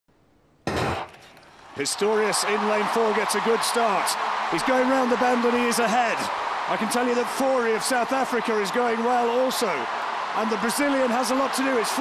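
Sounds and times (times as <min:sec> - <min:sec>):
man commentating a race: 0:01.8 - 0:12.0.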